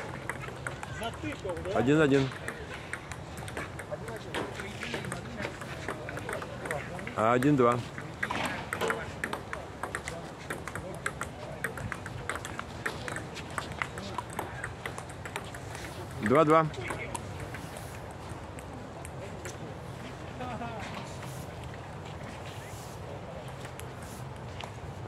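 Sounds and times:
table tennis ball tapping: 0.0s - 17.6s.

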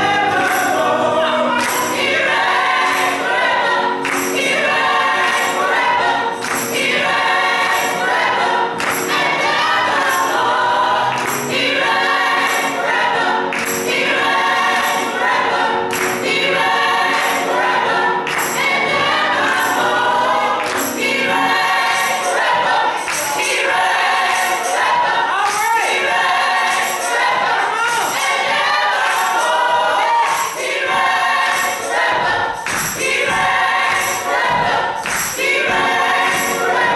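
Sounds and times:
choir singing: 0.0s - 36.9s
hand claps: 1.6s - 2.1s, 2.8s - 4.6s, 5.2s - 5.8s, 6.4s - 6.9s, 8.8s - 9.2s, 11.1s - 11.6s, 13.5s - 14.0s, 15.9s - 16.4s, 18.3s - 18.8s, 20.6s - 21.0s, 21.8s - 23.6s, 26.6s - 36.9s.

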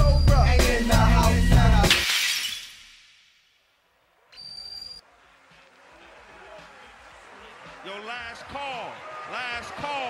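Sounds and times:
crashing shattering noise: 1.8s - 3.4s.

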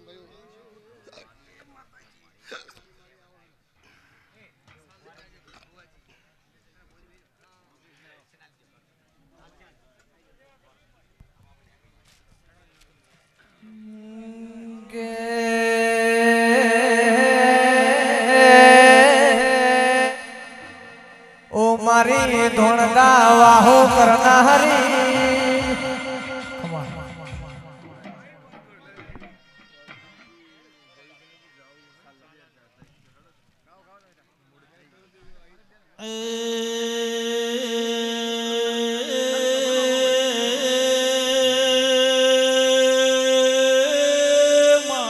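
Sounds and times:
faint voices: 13.5s - 29.2s
short sharp vocal sound: 13.6s - 28.4s
chant-like singing: 13.6s - 28.6s, 36.0s - 45.0s
held musical note: 13.7s - 28.5s.

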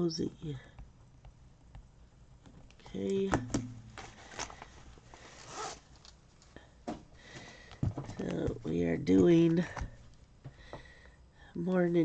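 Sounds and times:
zipper of fabric pouch: 5.3s - 5.9s.

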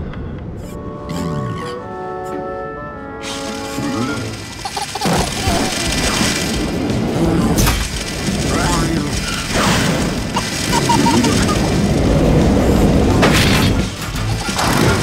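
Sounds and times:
cartoon action music: 3.2s - 15.0s
cracks and booms: 4.9s - 15.0s.

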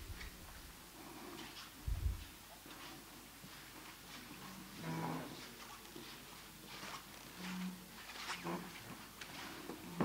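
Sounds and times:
chair scraping across floor: 6.9s - 10.0s.

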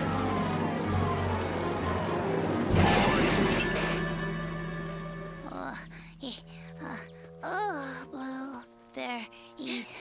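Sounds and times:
background music: 0.0s - 10.0s
cartoon crash: 2.7s - 4.2s.

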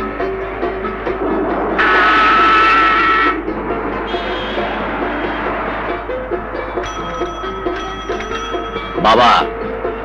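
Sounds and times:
background music: 0.0s - 10.0s
vehicle horn blast: 4.1s - 5.4s.

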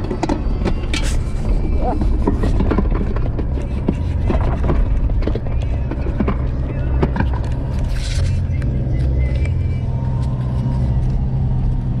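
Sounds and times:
knocks and rattles: 0.0s - 8.0s
engine and tyres rumbling: 0.0s - 12.0s.

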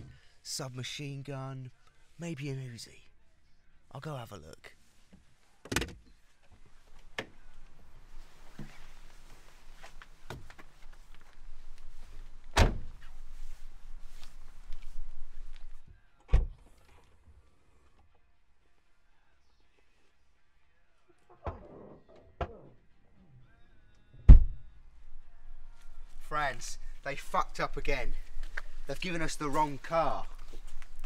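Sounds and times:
rustling and handling noise: 6.3s - 15.8s, 28.1s - 31.0s
car door thuds: 12.5s - 13.0s.

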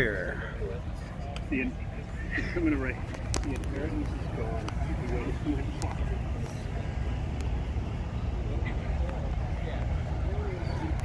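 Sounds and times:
faint distant voices: 0.0s - 11.0s
steady low rumble: 0.0s - 11.0s.

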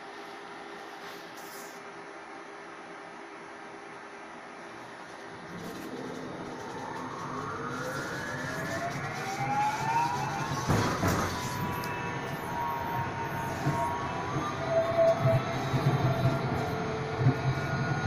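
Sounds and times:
tram running hum: 4.7s - 18.0s
traction motors whining: 5.1s - 18.0s.

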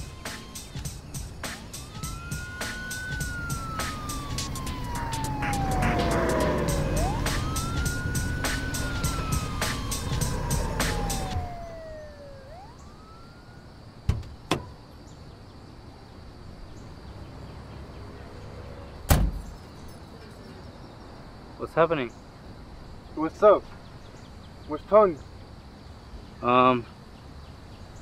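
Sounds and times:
music with a steady beat: 0.0s - 11.5s
emergency vehicle siren wailing: 1.5s - 13.9s
sharp knocks: 14.1s - 14.7s.

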